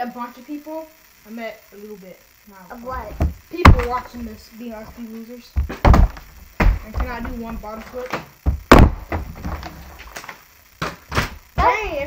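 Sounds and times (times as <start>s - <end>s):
child talking: 0.0s - 5.6s, 6.8s - 8.2s, 11.6s - 12.0s
plastic bottle hitting table: 3.1s - 4.1s, 5.6s - 11.4s.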